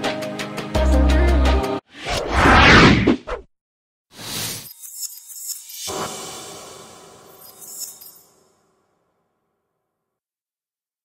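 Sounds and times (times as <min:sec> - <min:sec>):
swish and ringing hit: 0:04.6 - 0:08.5.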